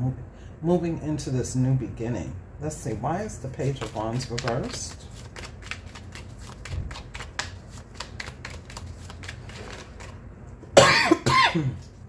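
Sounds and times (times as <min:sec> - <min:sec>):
cards being shuffled: 0:03.5 - 0:10.2.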